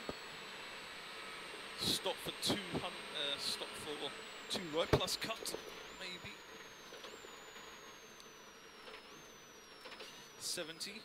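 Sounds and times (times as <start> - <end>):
drivetrain whine: 0.0 - 11.0.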